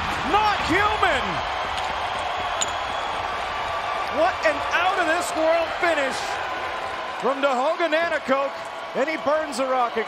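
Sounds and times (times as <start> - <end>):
arena crowd cheering: 0.0 - 10.0.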